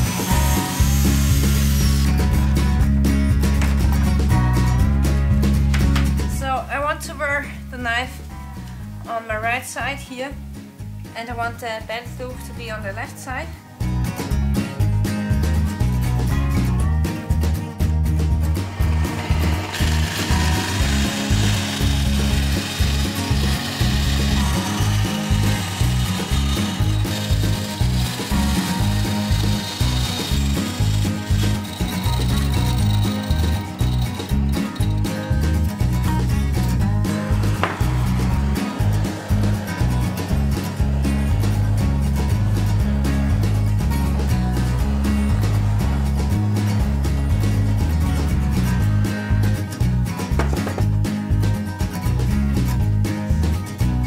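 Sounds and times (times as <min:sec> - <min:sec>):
band saw cutting plastic: 0:00.0 - 0:02.3, 0:18.5 - 0:35.2
background music with steady beat: 0:00.0 - 0:54.0.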